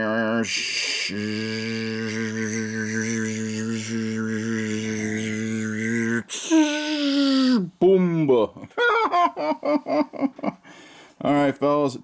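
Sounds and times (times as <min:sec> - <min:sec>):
deep voice chanting one note: 0:00.0 - 0:06.6.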